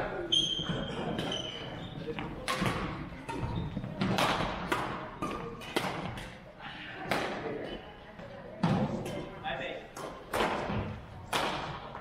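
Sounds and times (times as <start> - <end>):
racket hitting shuttlecock: 2.3 - 6.4, 7.0 - 7.5, 10.0 - 12.0.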